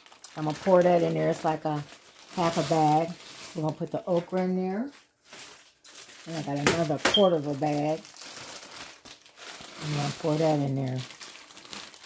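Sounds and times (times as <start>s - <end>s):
plastic freezer bag crinkling: 0.0s - 12.0s.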